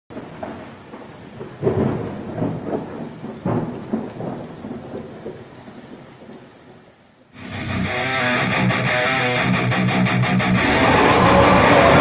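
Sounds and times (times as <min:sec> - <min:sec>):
rolling thunder: 0:00.1 - 0:05.9, 0:10.5 - 0:12.0
steady rain: 0:00.1 - 0:08.9, 0:10.4 - 0:12.0.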